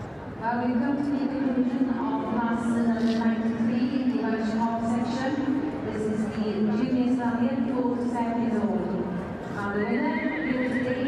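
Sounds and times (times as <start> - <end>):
horse whinnying: 9.8 - 11.0.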